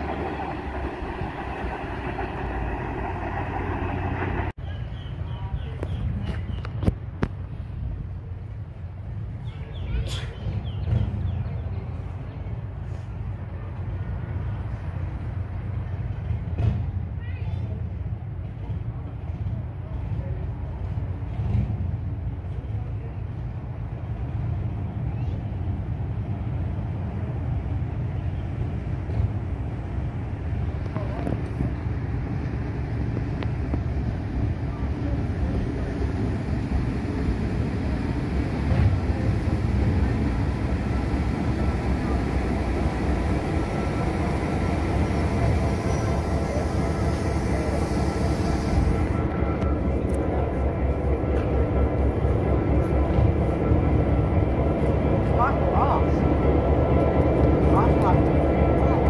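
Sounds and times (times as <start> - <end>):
diesel locomotive engine rumble: 0.0 - 59.0.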